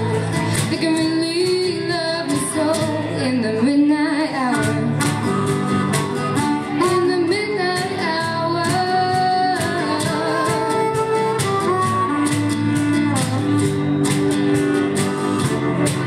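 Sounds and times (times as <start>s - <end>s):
woman singing: 0.0s - 5.4s, 6.6s - 12.3s
guitar: 0.0s - 16.0s
steady beat: 8.8s - 16.0s
harmonica: 9.9s - 16.0s.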